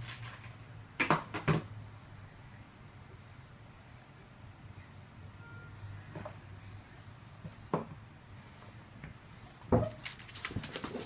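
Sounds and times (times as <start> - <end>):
claws clicking on tile floor: 9.9 - 11.0.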